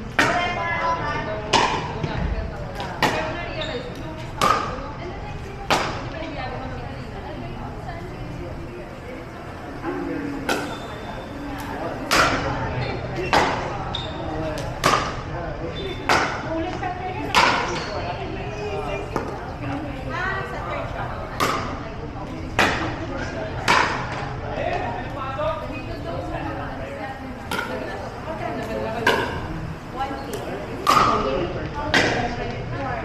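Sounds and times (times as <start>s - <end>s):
paddles striking pickleball: 14.6s - 15.2s, 30.8s - 31.2s.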